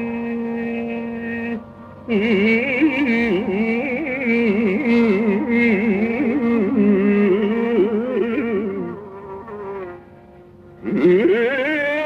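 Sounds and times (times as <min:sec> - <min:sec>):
faint steady drone: 0:00.0 - 0:12.0.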